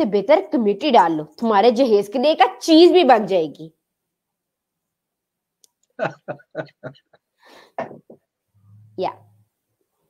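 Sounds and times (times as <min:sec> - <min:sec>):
person speaking: 0:06.0 - 0:07.1, 0:07.8 - 0:09.4.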